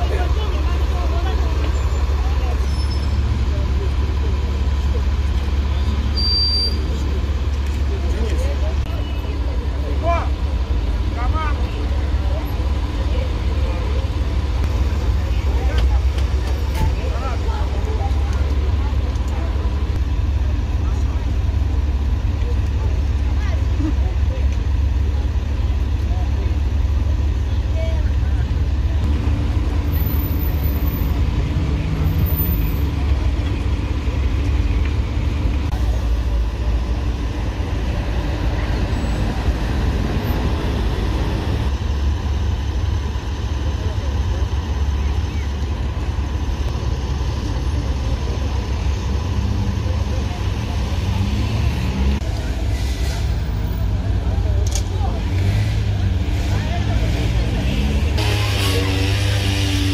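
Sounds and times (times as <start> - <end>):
street traffic: 0.0 - 59.9
vehicle engines idling: 0.0 - 59.9.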